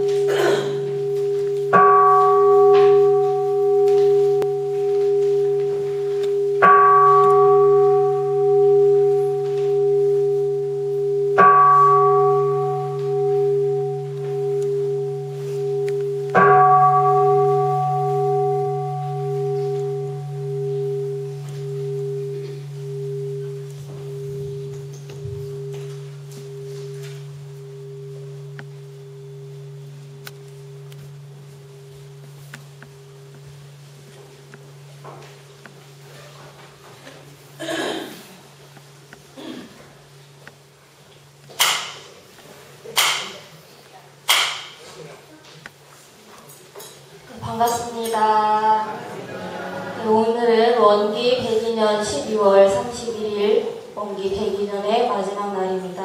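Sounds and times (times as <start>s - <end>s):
brass bowl bell ringing: 0.0s - 37.7s.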